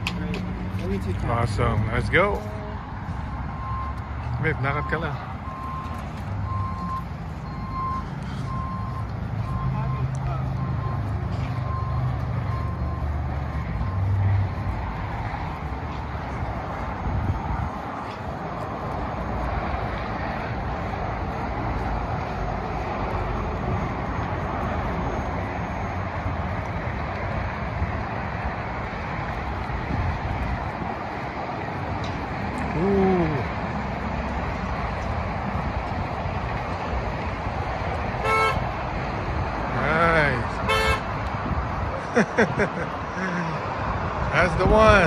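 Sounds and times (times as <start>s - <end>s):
outdoor traffic noise: 0.0s - 45.0s
reversing alarm beeping: 3.5s - 14.2s.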